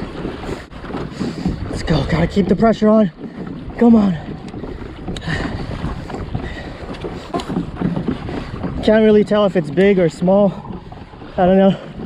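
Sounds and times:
water slapping against kayak: 0.0s - 12.0s
wind buffeting microphone: 0.0s - 12.0s.

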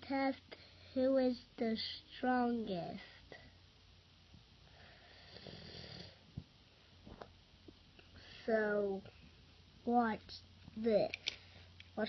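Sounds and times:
soft breathy hiss: 0.1s - 12.0s.

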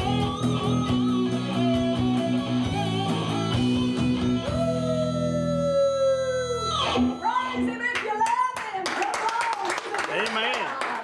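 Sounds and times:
electric guitar chords: 0.0s - 8.0s
hand claps: 8.0s - 11.0s.

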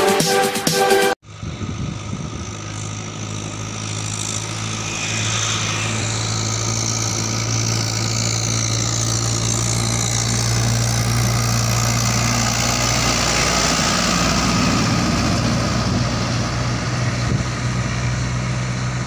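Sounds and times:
tractor diesel engine running: 1.2s - 19.0s.

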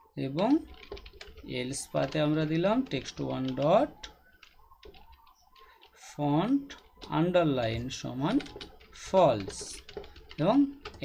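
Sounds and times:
person speaking: 0.0s - 4.2s, 6.0s - 11.0s
typing on a computer keyboard: 0.4s - 11.0s.

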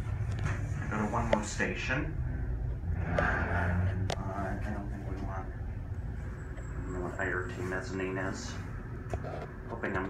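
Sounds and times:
hydraulic elevator hum: 0.0s - 9.8s.

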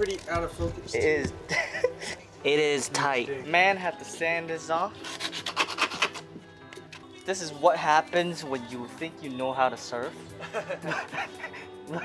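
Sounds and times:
sandpaper rasping strokes: 5.0s - 6.3s.

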